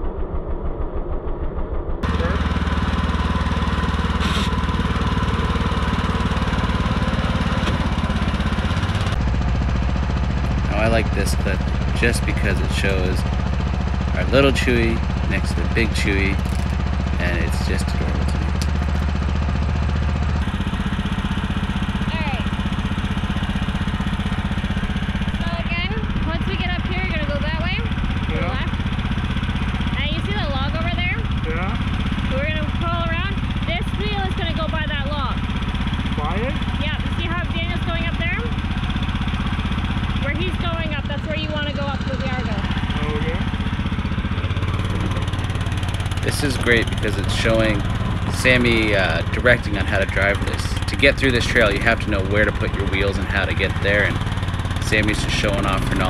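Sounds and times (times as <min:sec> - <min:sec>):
indistinct voices talking: 0:02.0 - 0:09.2, 0:10.5 - 0:19.1, 0:22.0 - 0:22.6, 0:24.5 - 0:38.6, 0:39.5 - 0:56.0
atv engine running: 0:02.0 - 0:56.0.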